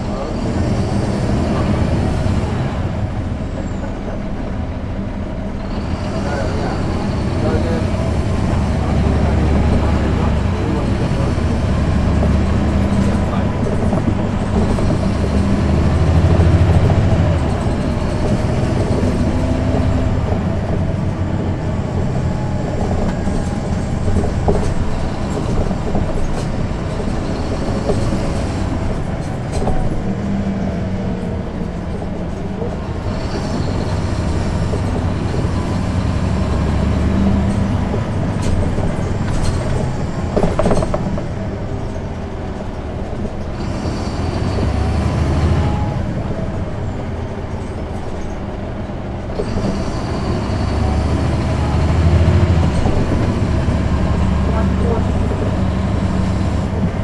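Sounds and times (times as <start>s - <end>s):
bus diesel engine drone: 0.0s - 57.0s
sharp clicks and knocks: 37.4s - 42.0s.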